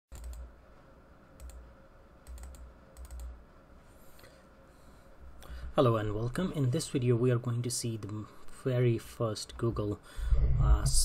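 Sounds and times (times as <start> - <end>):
computer keyboard keys clicking: 0.1 - 0.5, 1.4 - 1.6, 2.2 - 3.3.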